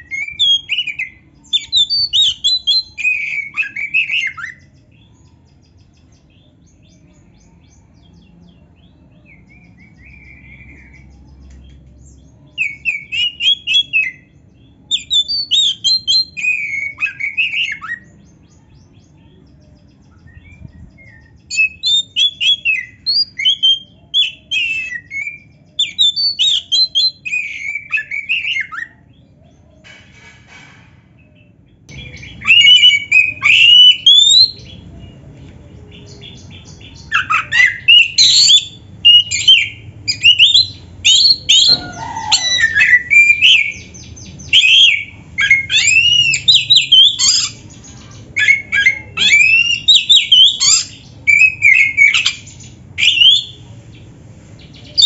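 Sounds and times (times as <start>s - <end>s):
magpie-robin singing whistled phrases: 0.0s - 5.8s, 12.0s - 18.5s, 19.2s - 29.0s, 31.9s - 34.8s, 36.0s - 53.6s.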